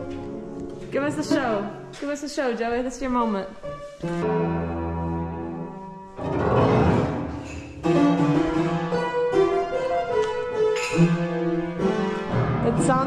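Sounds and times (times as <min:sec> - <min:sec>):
old upright piano playing: 0:00.0 - 0:13.0.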